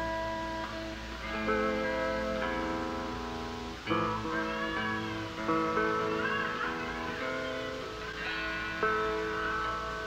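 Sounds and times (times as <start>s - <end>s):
electric guitar notes bending: 0.0s - 10.0s.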